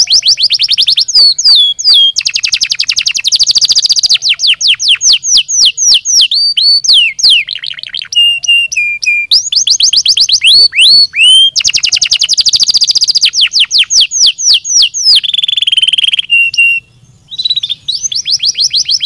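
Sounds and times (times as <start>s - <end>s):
canary singing: 0.0s - 19.0s.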